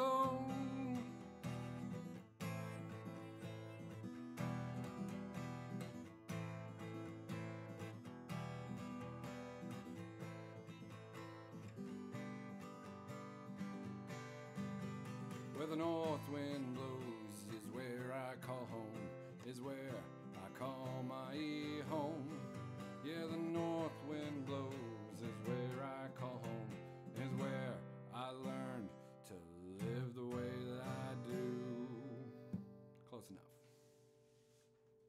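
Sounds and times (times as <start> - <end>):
man singing: 0.0 - 1.4, 15.5 - 33.5
acoustic guitar strumming: 0.0 - 34.2.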